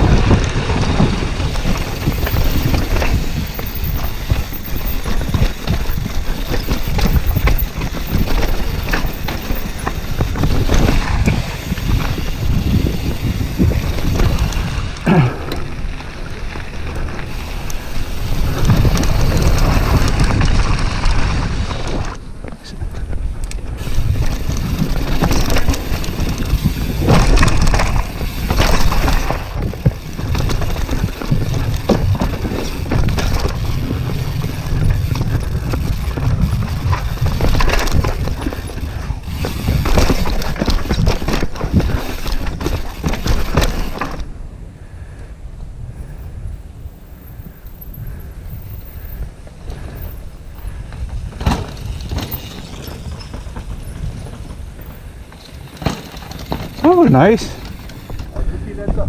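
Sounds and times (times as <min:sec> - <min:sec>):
bike tyre noise: 0:00.0 - 0:59.0
wind buffeting microphone: 0:00.0 - 0:59.0
chain and frame rattling: 0:01.5 - 0:14.8, 0:51.1 - 0:58.4.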